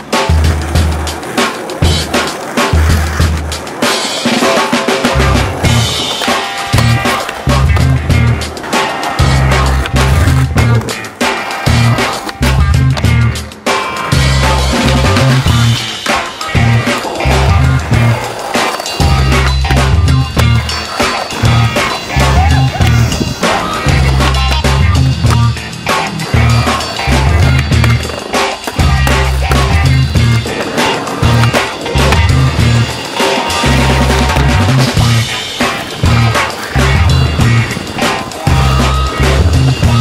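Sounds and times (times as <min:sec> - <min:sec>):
music with heavy bass and drums: 0:00.0 - 0:40.0
skateboard rolling on asphalt: 0:00.0 - 0:40.0.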